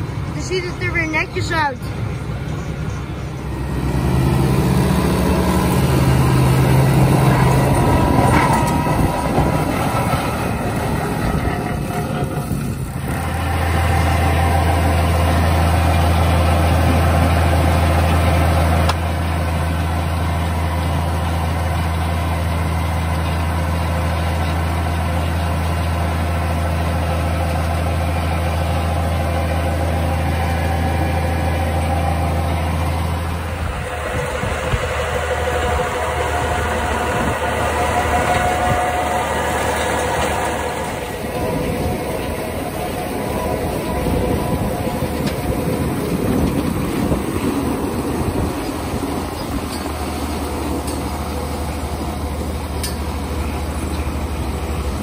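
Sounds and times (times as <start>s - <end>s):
farm machinery noise: 0.0s - 55.0s
tractor engine running: 0.0s - 55.0s.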